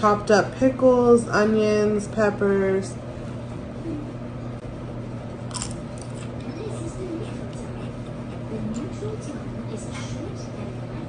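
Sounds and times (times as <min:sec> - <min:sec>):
steady low hum: 0:00.0 - 0:11.0
chewing crunches: 0:05.5 - 0:06.4
chip crunching as bitten: 0:05.5 - 0:06.4.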